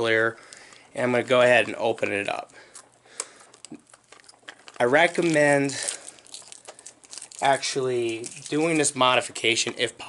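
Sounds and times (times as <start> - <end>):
plastic case clicks and crinkles: 0.5 - 9.9.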